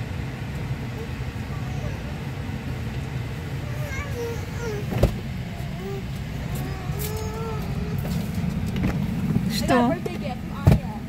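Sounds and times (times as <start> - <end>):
car cabin rumble: 0.3 - 11.0
faint voices: 0.8 - 8.8.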